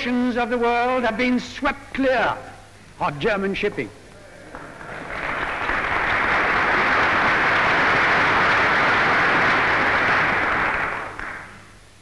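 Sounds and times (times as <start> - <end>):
audience applauding: 4.4 - 11.6.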